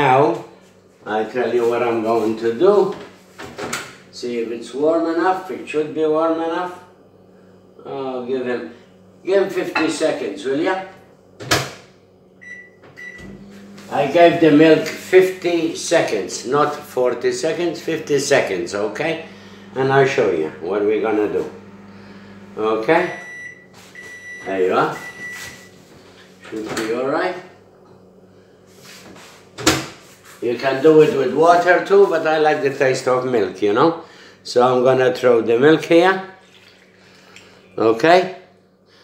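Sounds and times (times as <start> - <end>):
microwave humming: 0.0 - 28.7
microwave keypad beeping: 12.4 - 13.4, 23.0 - 25.8.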